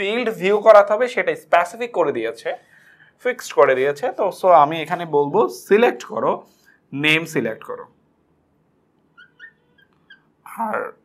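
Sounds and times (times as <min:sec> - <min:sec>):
marker squeaking on glass board: 0:09.1 - 0:10.4.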